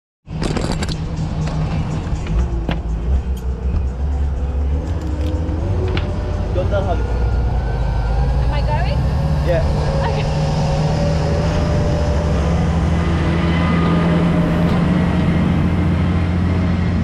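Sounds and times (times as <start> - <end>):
boat engine rumbling: 0.3 - 17.0
faint rising whine: 1.0 - 17.0.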